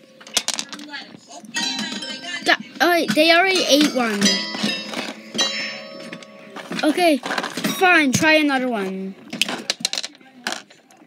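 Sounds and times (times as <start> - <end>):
object clanging with ringing tone: 1.6 - 8.0.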